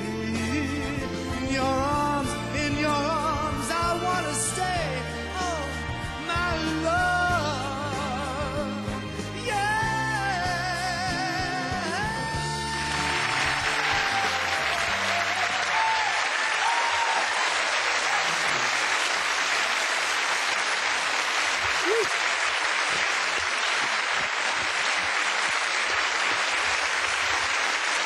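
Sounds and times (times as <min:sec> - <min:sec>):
backing music: 0:00.0 - 0:17.0
audience applauding: 0:12.4 - 0:28.0.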